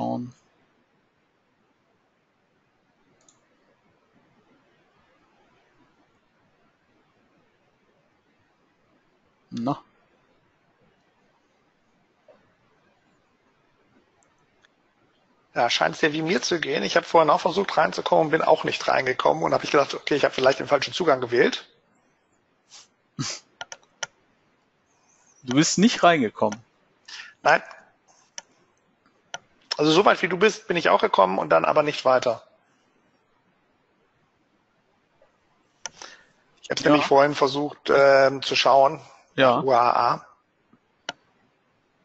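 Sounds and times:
computer mouse clicking: 3.0 - 3.5, 23.6 - 24.2, 28.2 - 29.8, 35.8 - 36.2
computer mouse click: 3.1 - 3.5, 23.6 - 24.2, 41.0 - 41.3.

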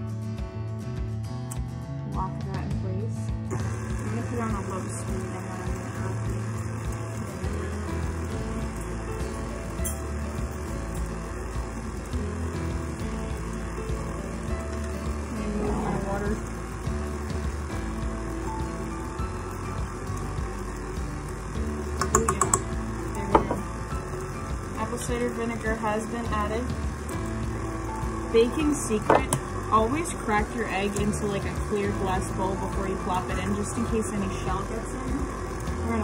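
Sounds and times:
background music: 0.0 - 36.0.

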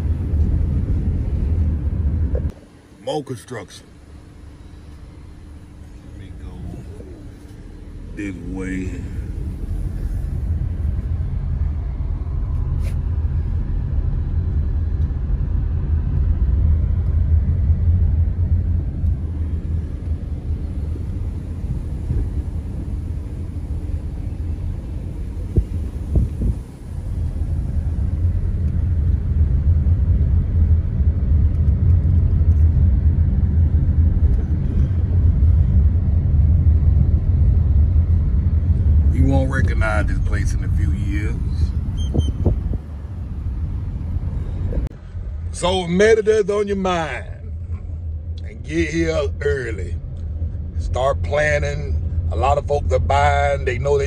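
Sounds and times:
car driving rumble from inside: 0.0 - 2.8, 3.8 - 54.0.

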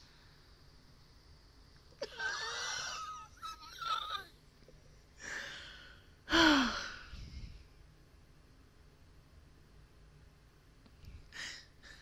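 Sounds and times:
woman wheezing with laughter: 2.0 - 4.3.

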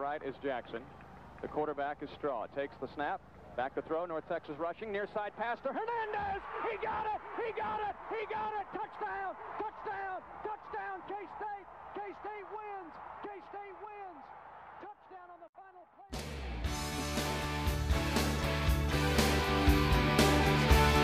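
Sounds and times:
excited shouting: 5.8 - 15.9
rock music with guitar and drums: 16.2 - 21.0.

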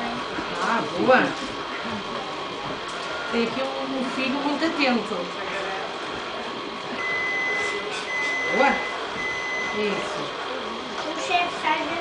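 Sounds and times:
high electronic beep: 7.0 - 9.8.

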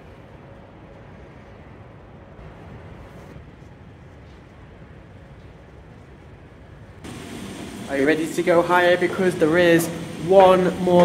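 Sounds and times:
steady low background noise: 0.0 - 11.0
bright hiss: 7.0 - 11.0
man speaking: 7.8 - 11.0.

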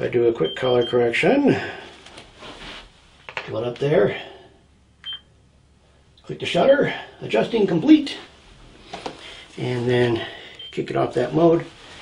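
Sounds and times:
camera beep: 5.0 - 5.2.

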